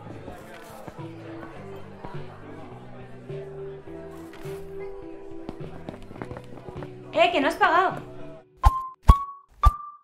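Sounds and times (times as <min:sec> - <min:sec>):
background music with held tones: 0:00.0 - 0:10.0
quick footsteps: 0:05.4 - 0:07.0.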